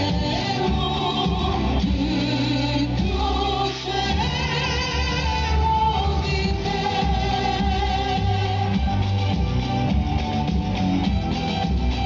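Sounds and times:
live band with singing: 0:00.0 - 0:12.0.

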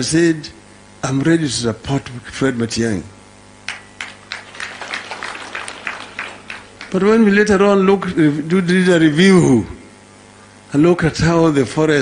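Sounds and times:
crowd clapping: 0:03.6 - 0:07.2.

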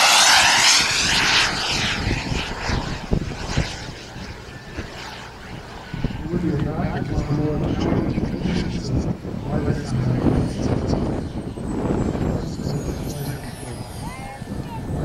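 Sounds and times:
model jet turbine whining: 0:00.0 - 0:15.0
indistinct talking: 0:12.4 - 0:15.0.

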